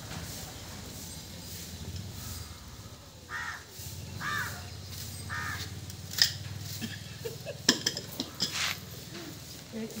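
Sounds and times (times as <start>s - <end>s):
crow cawing: 3.3s - 4.7s, 5.3s - 5.8s.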